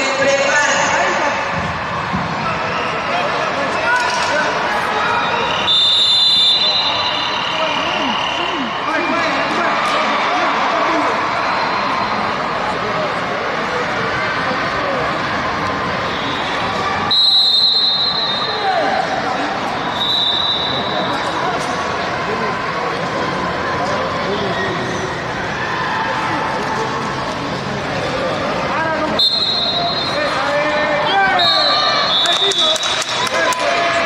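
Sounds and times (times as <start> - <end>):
murmur of voices in a hall: 0.0 - 34.0
referee's whistle blast: 5.2 - 8.7, 16.1 - 18.6, 19.9 - 21.2, 29.2 - 30.3, 31.2 - 33.0.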